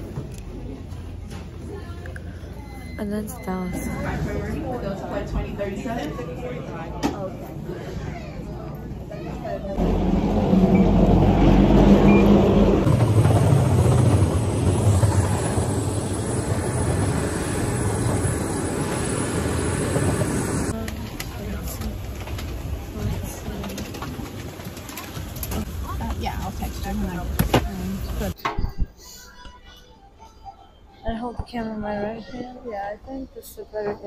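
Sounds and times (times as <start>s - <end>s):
faint voices: 0.0s - 11.0s
aircraft cabin noise: 9.1s - 28.4s
loud aircraft rumbling: 9.8s - 20.8s.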